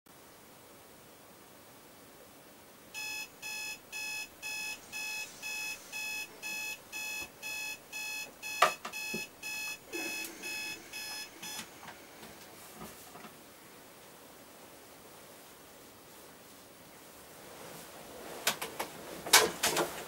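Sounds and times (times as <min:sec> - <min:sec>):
alarm clock beeping: 0:03.0 - 0:11.8
bedding rustling: 0:15.2 - 0:20.0.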